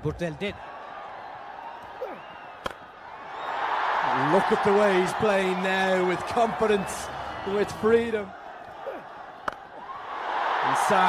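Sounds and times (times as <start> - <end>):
crowd cheering: 0.0 - 11.0
cricket bat striking ball: 2.6 - 2.8, 9.4 - 9.7.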